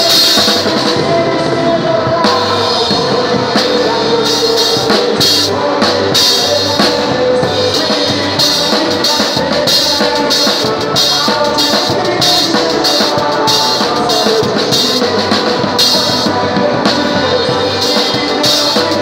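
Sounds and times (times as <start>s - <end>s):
drums and cymbals: 0.0s - 19.0s
live band music: 0.0s - 19.0s.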